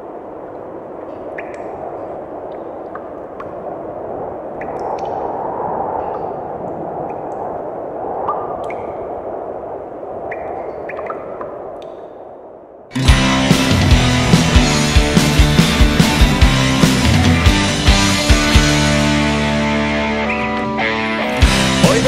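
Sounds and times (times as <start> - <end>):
steady rushing noise: 0.0 - 22.0.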